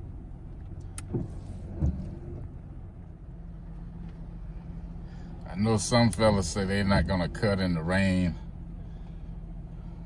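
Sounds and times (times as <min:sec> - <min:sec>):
engine idling hum: 0:00.0 - 0:10.0.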